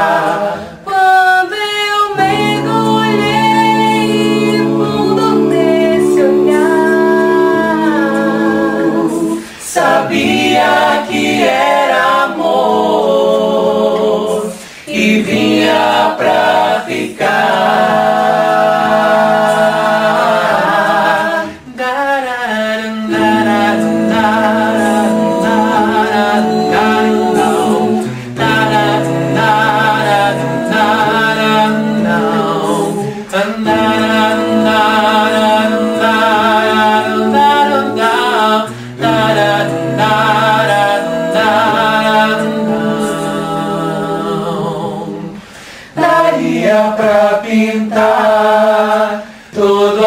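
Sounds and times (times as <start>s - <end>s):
a cappella group singing harmony: 0.0s - 50.0s.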